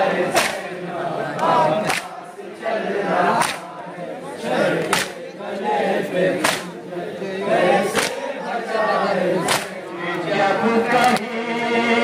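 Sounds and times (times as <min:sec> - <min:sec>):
men chanting in unison: 0:00.0 - 0:12.0
hands slapping chests: 0:00.3 - 0:00.7, 0:01.4 - 0:02.2, 0:03.3 - 0:03.8, 0:04.8 - 0:05.2, 0:06.4 - 0:06.8, 0:07.9 - 0:08.2, 0:09.4 - 0:09.8, 0:11.0 - 0:11.2.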